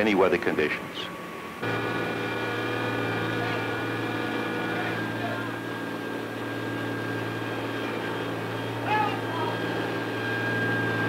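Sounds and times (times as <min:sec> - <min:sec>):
engine drone with whining tones: 0:00.0 - 0:11.0.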